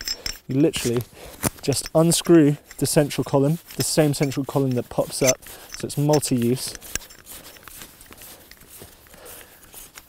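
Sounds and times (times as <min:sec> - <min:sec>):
gloved hands handling tripod: 0:00.0 - 0:10.0.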